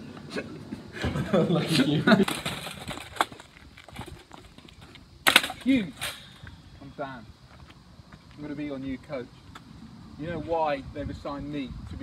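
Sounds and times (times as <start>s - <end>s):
ball cart rattling over paving: 1.1s - 6.3s.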